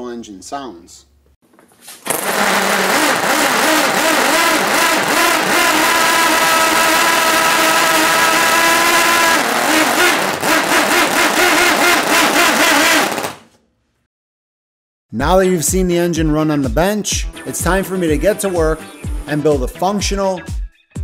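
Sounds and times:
model aircraft engine buzzing: 2.1s - 13.3s.

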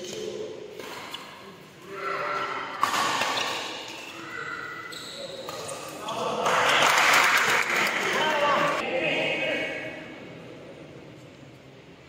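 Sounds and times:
racket hitting shuttlecock: 2.8s - 4.1s.

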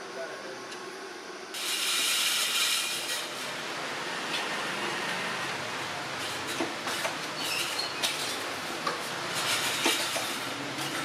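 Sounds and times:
machine hiss: 1.5s - 3.5s.

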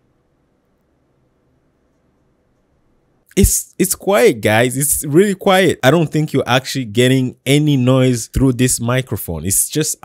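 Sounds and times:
fan hiss and hum: 0.0s - 10.0s.

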